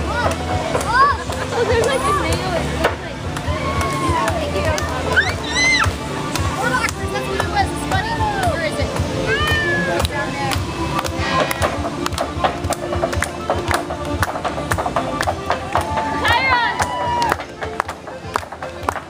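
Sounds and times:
high voices calling out: 0:00.0 - 0:07.2
dance music over loudspeakers: 0:00.0 - 0:19.0
dance shoes tapping on deck: 0:10.0 - 0:19.0.

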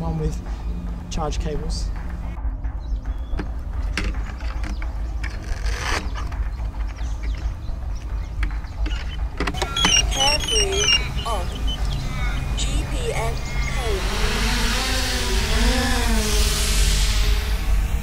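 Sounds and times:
short high electronic beeps: 0:09.6 - 0:12.6.

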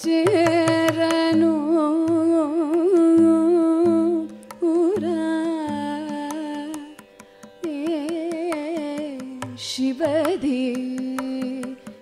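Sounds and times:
person singing ornamented melody: 0:00.0 - 0:07.0, 0:07.6 - 0:12.0.

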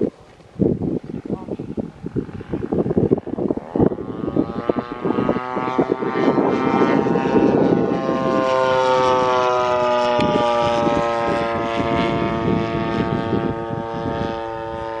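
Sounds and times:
model airplane engine droning: 0:00.0 - 0:15.0.

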